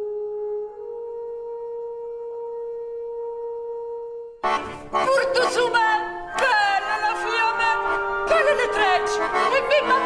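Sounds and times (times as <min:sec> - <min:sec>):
sustained pure musical tone: 0:00.0 - 0:10.0.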